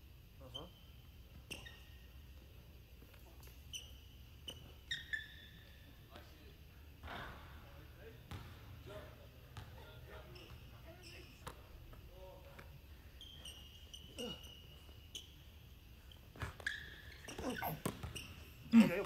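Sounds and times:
sneaker squeaks: 0.4 - 6.3, 9.4 - 19.0.

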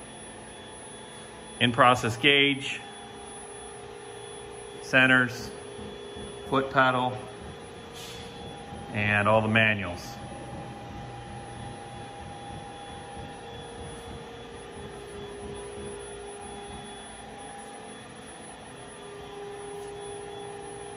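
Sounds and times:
machinery hum with held tones: 0.0 - 20.9.

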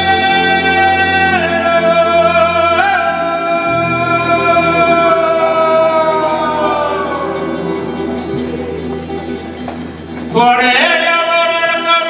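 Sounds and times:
man singing long notes: 0.0 - 9.1
band accompaniment: 0.0 - 12.0.

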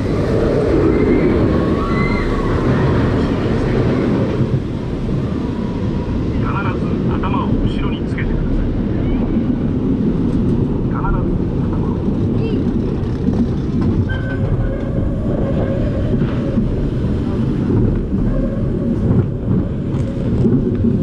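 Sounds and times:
roller coaster rumbling on track: 0.0 - 21.0
rushing air: 0.0 - 21.0.

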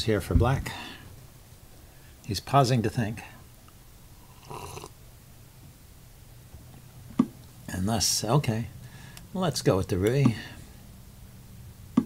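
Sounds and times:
faint low hum: 0.0 - 12.0
soft breath through nose: 8.8 - 9.3.

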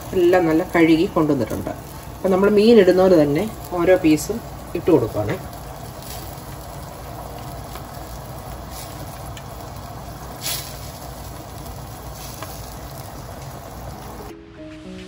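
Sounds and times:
gravy bubbling in a pot: 0.0 - 14.3
background music: 14.1 - 15.0.

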